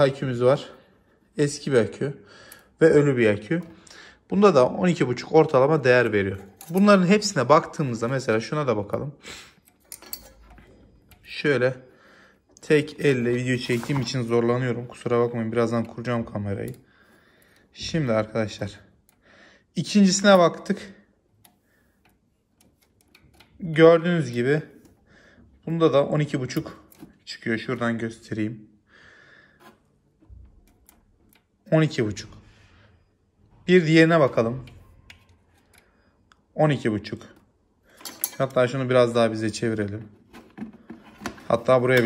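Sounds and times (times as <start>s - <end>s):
faint breath: 2.2s - 2.8s, 3.7s - 4.3s, 11.8s - 12.6s, 16.8s - 17.7s, 19.1s - 19.7s, 25.0s - 25.6s, 28.8s - 29.8s, 32.4s - 33.2s
faint metallic clicks: 21.4s - 25.0s.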